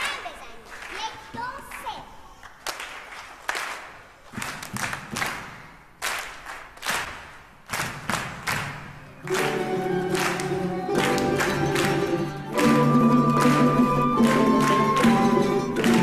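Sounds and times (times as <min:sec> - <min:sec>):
sharp hand claps: 0:00.0 - 0:16.0
orchestra and children's choir: 0:09.2 - 0:16.0.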